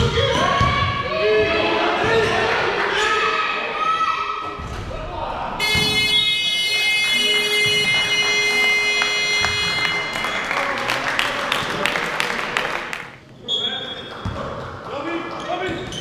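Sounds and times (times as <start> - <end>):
voices: 0.3 - 15.9
game buzzer long tone: 5.6 - 11.2.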